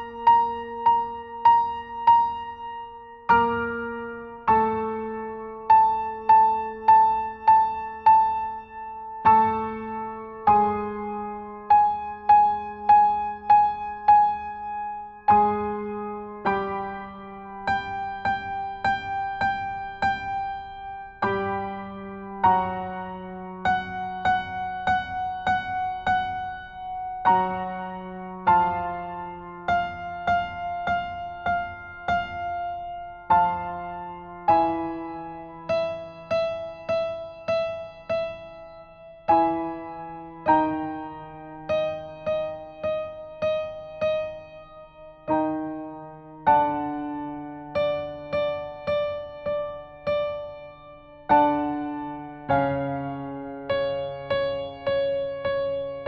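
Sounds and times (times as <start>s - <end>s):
piano notes and chords: 0.0s - 56.0s.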